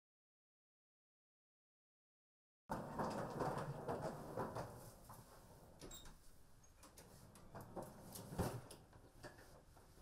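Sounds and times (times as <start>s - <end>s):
faint rustling and knocks: 2.7s - 10.0s.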